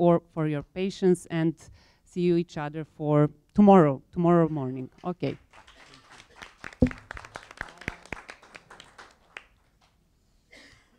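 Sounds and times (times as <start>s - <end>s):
audience applauding: 5.5s - 9.6s.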